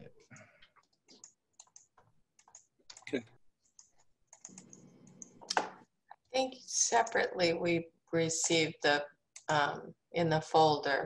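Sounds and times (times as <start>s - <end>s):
computer keyboard typing: 0.8s - 5.7s.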